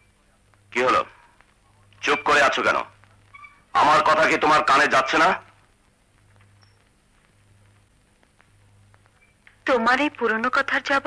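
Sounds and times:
faint low hum and hiss: 0:00.0 - 0:11.0.

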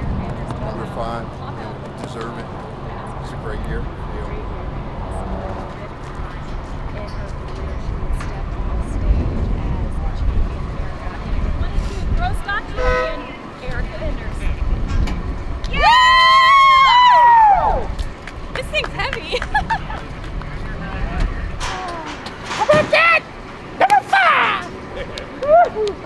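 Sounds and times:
low wind rumble: 0:00.0 - 0:26.0
high celebratory scream: 0:15.7 - 0:17.9.

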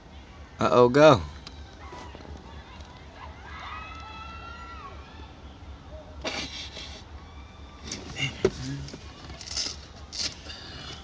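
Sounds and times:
girls shrieking and yelling: 0:03.1 - 0:05.4.

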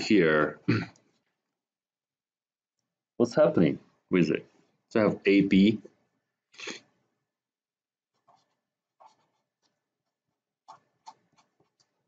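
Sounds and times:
marker scratching on paper: 0:08.1 - 0:12.0.

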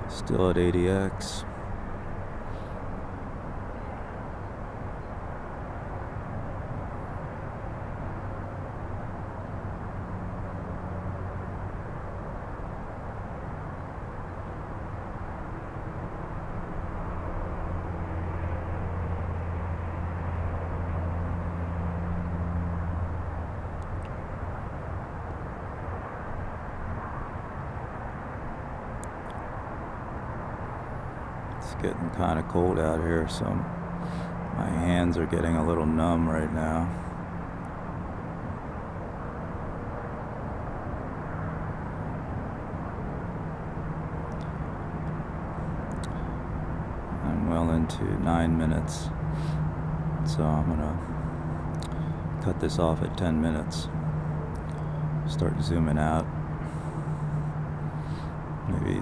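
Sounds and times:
distant engine drone: 0:00.0 - 0:59.0.

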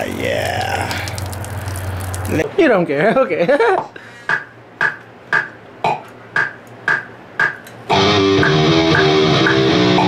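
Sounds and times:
metronome clicking: 0:06.4 - 0:10.0
loud electric guitar: 0:07.9 - 0:10.0.

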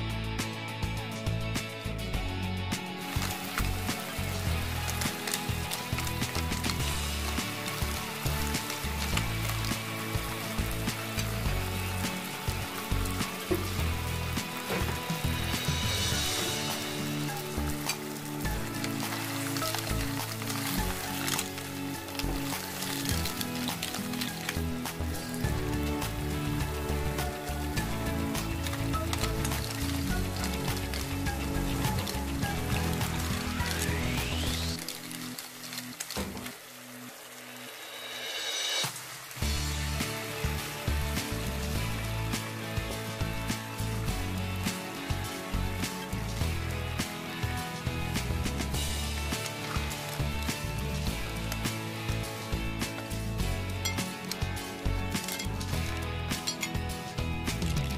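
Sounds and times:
background music: 0:00.0 - 0:57.9
food sizzling and bubbling in a pan: 0:02.9 - 0:57.9.

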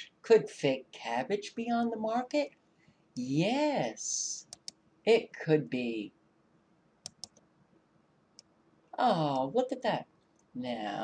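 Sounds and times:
computer mouse clicks: 0:04.5 - 0:04.8, 0:07.0 - 0:07.5.

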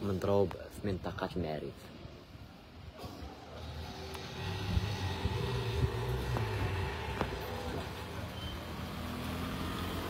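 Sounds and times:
vehicle engine humming: 0:03.2 - 0:10.0.

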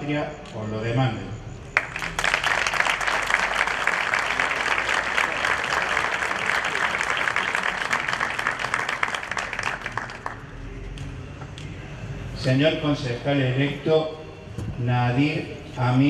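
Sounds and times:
audience applauding: 0:01.8 - 0:10.6.

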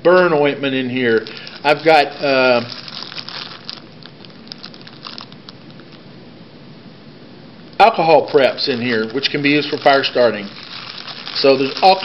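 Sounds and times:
plastic bag crinkling: 0:00.8 - 0:06.1, 0:07.8 - 0:12.0.

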